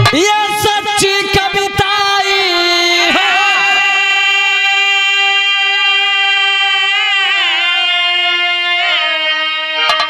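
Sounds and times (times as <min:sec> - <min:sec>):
harmonium sustained note: 0:00.0 - 0:10.0.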